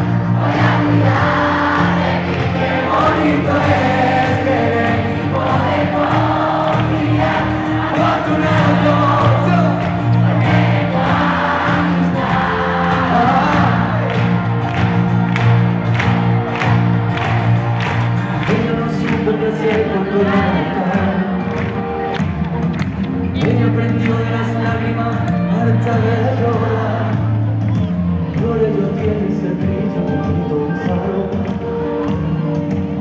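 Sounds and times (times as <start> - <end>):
steady drum beat: 0.0 - 19.4
crowd singing along: 0.0 - 22.1, 23.3 - 32.0
live pop band playing: 0.0 - 33.0.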